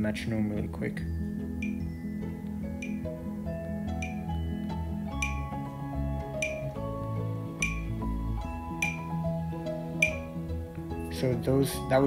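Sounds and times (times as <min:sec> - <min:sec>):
soft background music: 0:00.0 - 0:12.0
metronome ticking: 0:01.2 - 0:11.3.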